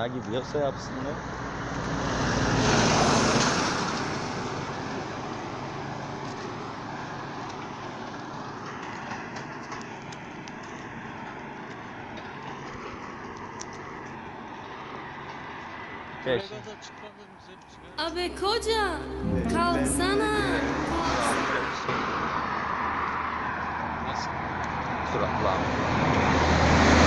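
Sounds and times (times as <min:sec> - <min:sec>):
highway traffic noise: 0:00.0 - 0:18.0, 0:20.2 - 0:27.0
vehicle passing by: 0:00.8 - 0:07.1, 0:20.2 - 0:27.0.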